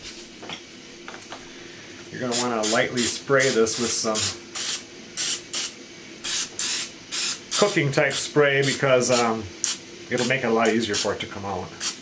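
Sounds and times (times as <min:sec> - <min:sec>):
cooking spray hissing: 0:01.4 - 0:12.0.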